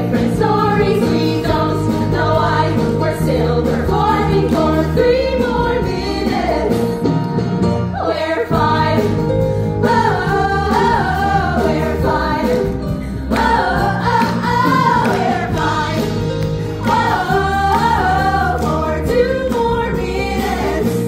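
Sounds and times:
women singing together: 0.0 - 6.8, 8.0 - 9.2, 9.8 - 21.0.

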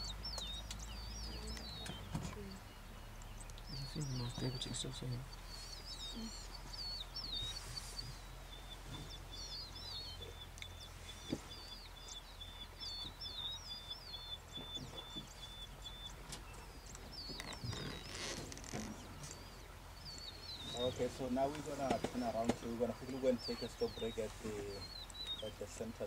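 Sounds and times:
low steady hum: 0.0 - 26.0.

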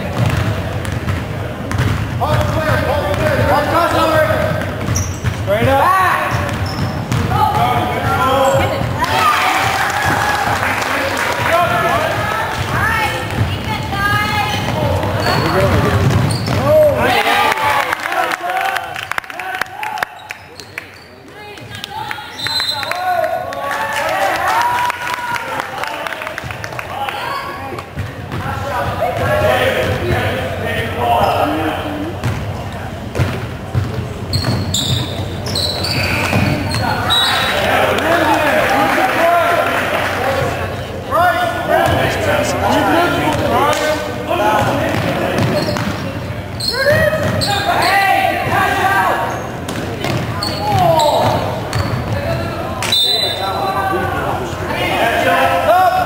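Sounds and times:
basketball bouncing on hardwood: 0.1 - 3.3.

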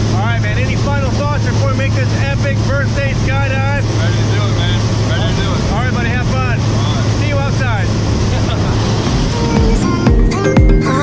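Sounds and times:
propeller engine droning: 0.0 - 11.0.

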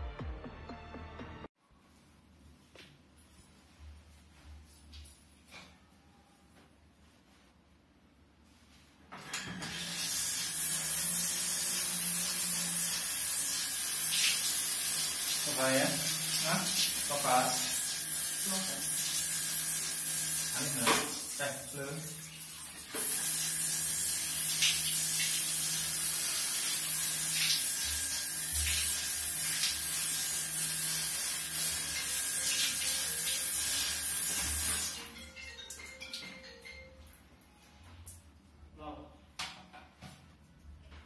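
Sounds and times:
shower water spraying: 9.6 - 35.1.

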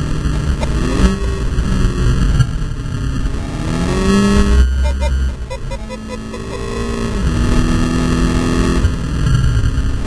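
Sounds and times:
race car engine at speed: 0.0 - 10.0
road and wind rumble: 0.0 - 10.0.

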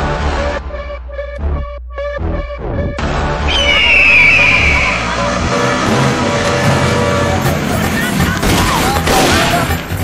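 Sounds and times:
motorcycle engines running: 5.0 - 9.0.

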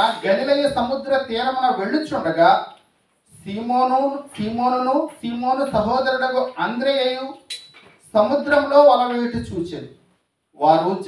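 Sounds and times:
man reading aloud into microphone: 0.0 - 11.0.

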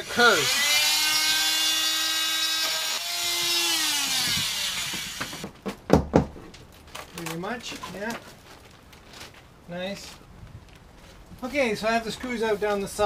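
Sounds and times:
power tool cutting wood: 0.0 - 5.5
sharp knocks: 4.2 - 6.5.

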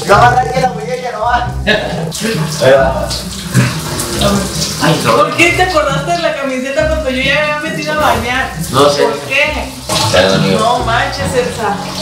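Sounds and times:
shower water spraying: 0.0 - 12.0.

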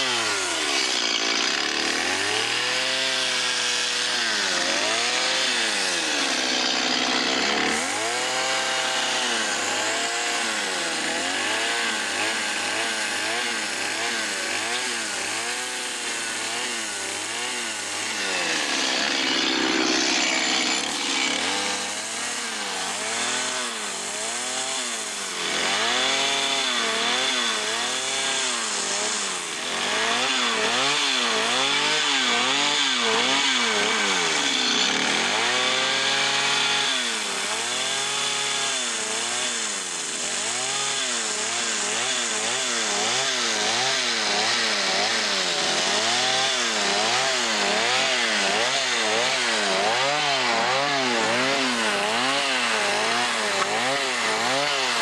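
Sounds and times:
chainsaw revving: 0.0 - 55.0.

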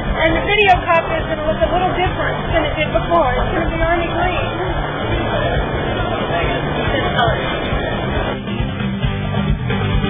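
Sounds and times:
indistinct talking: 0.0 - 9.7
low outdoor rumble: 0.0 - 10.0.

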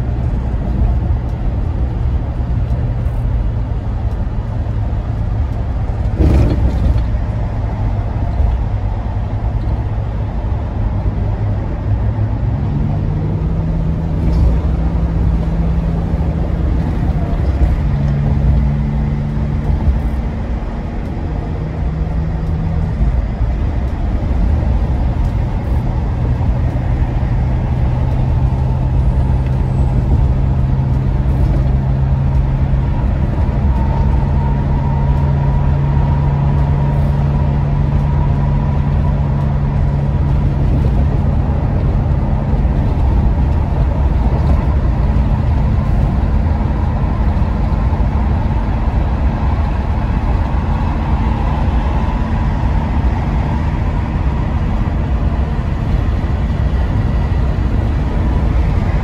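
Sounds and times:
low engine drone: 0.0 - 59.0
road and tyre rumble: 0.0 - 59.0.

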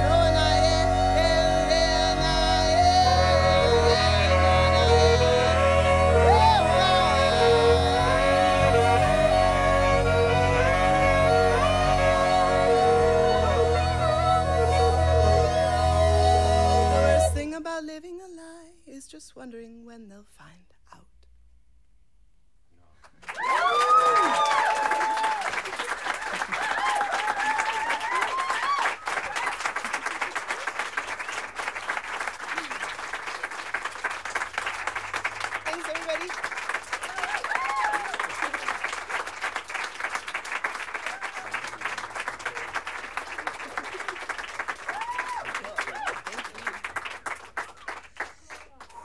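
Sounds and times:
audience applause: 23.1 - 49.0
whoops and cheers: 23.2 - 30.1, 37.0 - 38.6, 41.0 - 41.7, 44.6 - 46.6.

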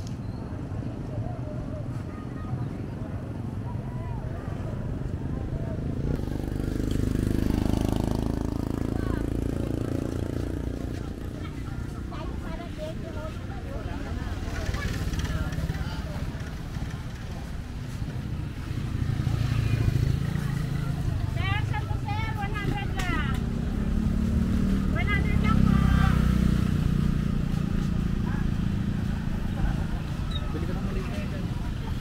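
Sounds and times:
people's voices: 0.0 - 32.0
motorcycles passing: 0.5 - 32.0.

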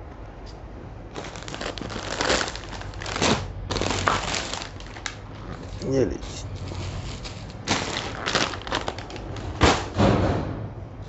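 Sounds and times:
plastic wrapping crinkling: 1.1 - 9.8.

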